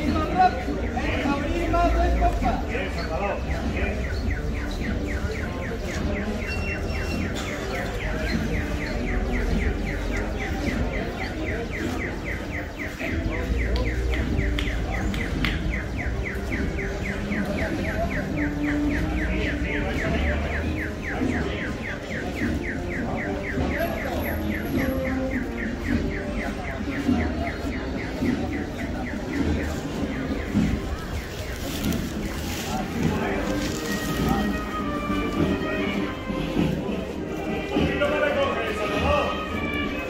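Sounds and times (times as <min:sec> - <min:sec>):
street noise: 0:00.0 - 0:40.0.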